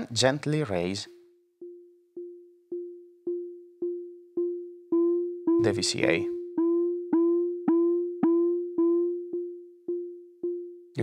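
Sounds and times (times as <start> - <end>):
pitched synth pings: 1.5 - 11.0.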